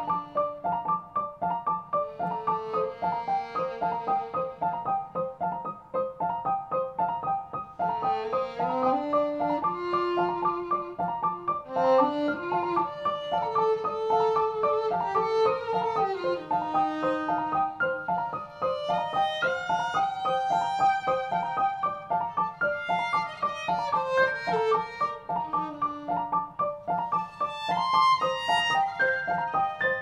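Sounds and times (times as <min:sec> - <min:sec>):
violin melody: 0:00.0 - 0:30.0.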